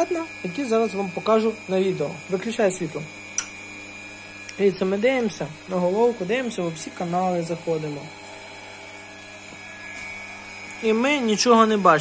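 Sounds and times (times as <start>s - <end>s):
machinery humming: 0.0s - 12.0s.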